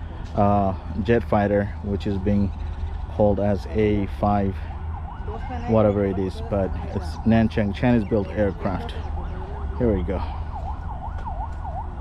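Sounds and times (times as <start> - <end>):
distant siren yelping: 0.0 - 12.0.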